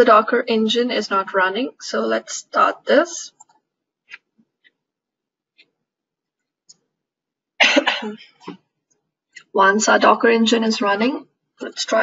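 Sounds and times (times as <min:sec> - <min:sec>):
person coughing: 0:07.6 - 0:08.4.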